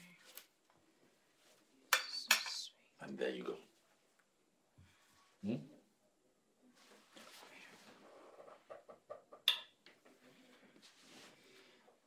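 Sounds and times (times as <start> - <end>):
cutlery clinking against dishes: 1.9 - 2.6.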